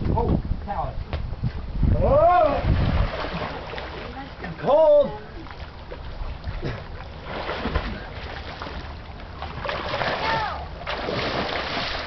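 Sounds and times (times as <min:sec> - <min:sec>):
pool water splashing: 0:02.2 - 0:12.0.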